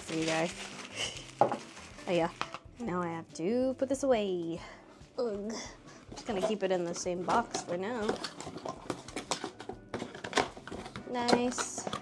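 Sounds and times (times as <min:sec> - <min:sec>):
taps clicks and rustles of packing: 0:00.0 - 0:02.6, 0:06.2 - 0:12.0.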